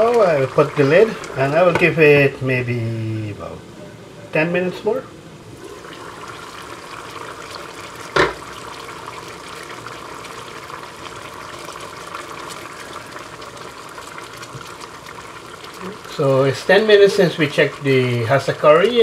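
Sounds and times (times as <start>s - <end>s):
sauce simmering in a frying pan: 0.0s - 3.1s, 5.5s - 19.0s.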